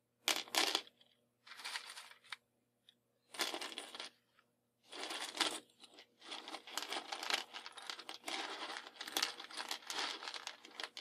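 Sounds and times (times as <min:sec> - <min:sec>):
matchsticks rattling and clattering: 0:00.3 - 0:02.4, 0:03.3 - 0:04.2, 0:04.9 - 0:11.0.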